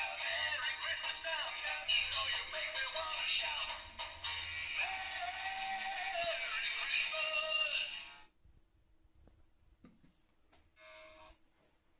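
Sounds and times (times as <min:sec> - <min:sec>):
toy playing song through small speaker: 0:00.0 - 0:08.3.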